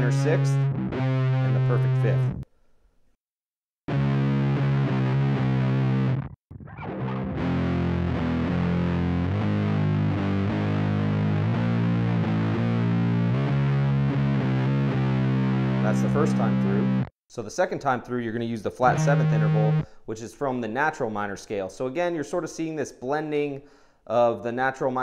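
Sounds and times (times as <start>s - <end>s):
distorted electric guitar riff: 0.0s - 2.4s, 3.9s - 17.1s, 18.8s - 19.8s.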